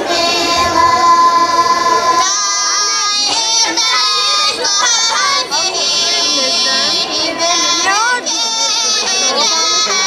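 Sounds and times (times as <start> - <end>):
women's choir singing: 0.0 - 10.0.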